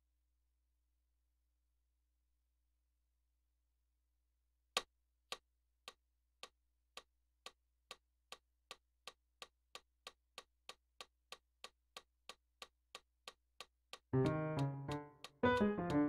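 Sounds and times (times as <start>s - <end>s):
metronome clicks: 14.2s - 16.0s.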